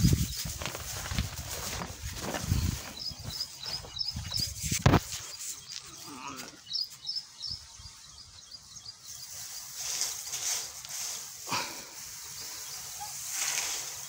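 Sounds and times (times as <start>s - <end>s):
small bird chirping: 0.0s - 10.5s, 12.1s - 14.0s.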